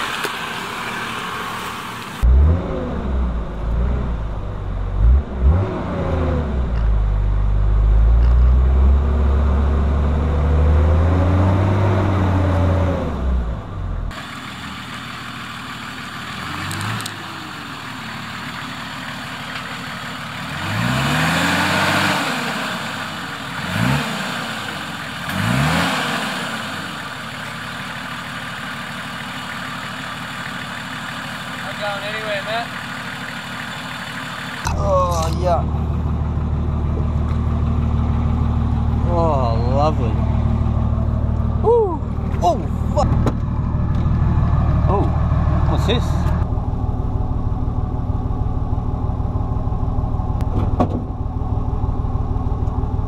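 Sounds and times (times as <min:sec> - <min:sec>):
diesel engine idling and revving: 0:00.0 - 0:53.0.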